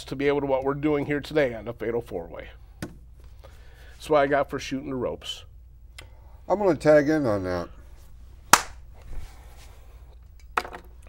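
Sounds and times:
hand slap: 8.5s - 8.8s.

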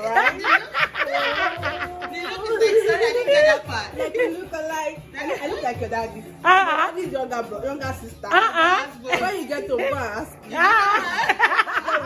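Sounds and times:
laughter: 0.0s - 2.4s, 10.7s - 12.0s.

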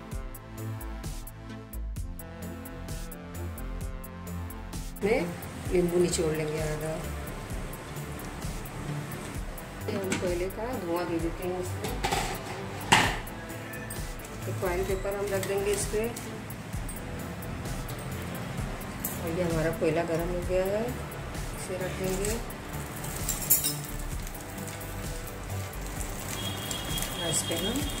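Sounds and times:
background music: 0.0s - 28.0s
low crackling sizzle: 5.0s - 9.9s, 14.1s - 28.0s
knock against metal pan: 11.8s - 13.3s.

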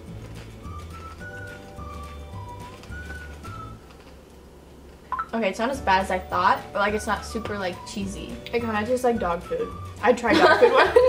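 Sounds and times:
whistle-like high melody: 0.7s - 3.8s.

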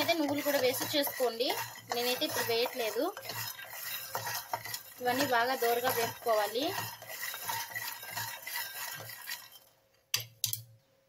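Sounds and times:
spatula stirring nuts in pan: 0.0s - 10.4s.

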